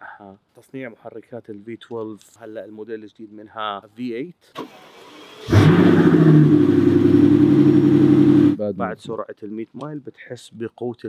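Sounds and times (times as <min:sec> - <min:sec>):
car engine running loud: 0:05.5 - 0:08.6.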